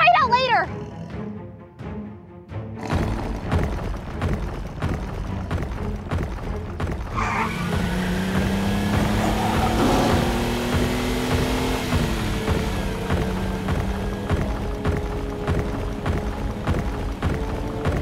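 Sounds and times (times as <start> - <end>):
off-road vehicle engine: 2.8 - 18.0
low drone rising in pitch: 7.1 - 17.9.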